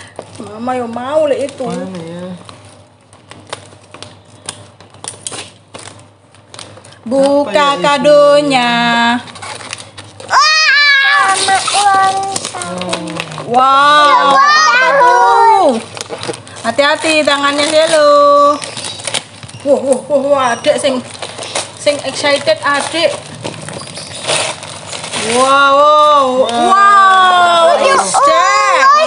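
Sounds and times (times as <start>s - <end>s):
wrapping paper crinkling and tearing: 0.3s - 7.0s, 8.8s - 29.0s
child's excited voice: 10.3s - 12.8s, 14.0s - 15.9s, 26.5s - 29.0s
voices: 10.3s - 15.9s, 25.2s - 29.0s.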